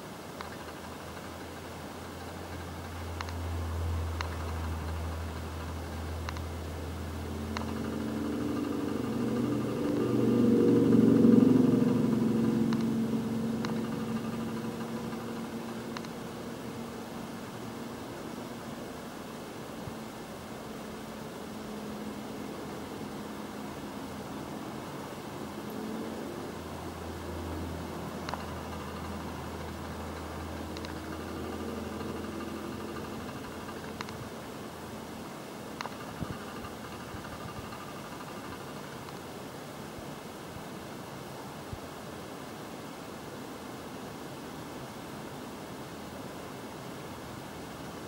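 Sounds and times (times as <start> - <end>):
low mechanical hum: 0.0 - 48.0
faint clicks: 2.2 - 3.5, 4.1 - 6.6, 7.5 - 10.1, 13.6 - 16.2, 28.2 - 34.3, 35.8 - 39.3
mouse click: 3.2 - 3.4, 6.2 - 6.5.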